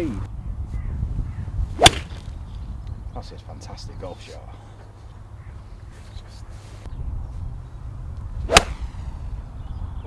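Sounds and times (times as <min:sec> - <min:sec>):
golf club striking ball: 0:01.8 - 0:02.4, 0:08.5 - 0:09.0.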